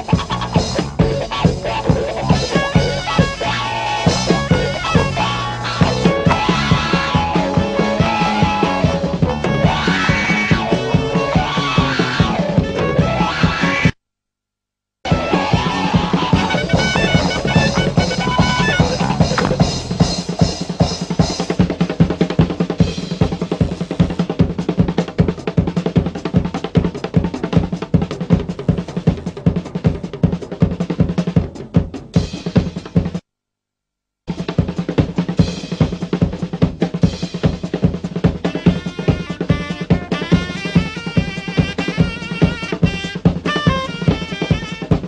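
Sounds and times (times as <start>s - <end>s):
electric guitars: 0.0s - 13.9s, 15.1s - 20.3s
fast drum solo: 0.0s - 13.9s, 15.1s - 33.2s, 34.3s - 45.0s.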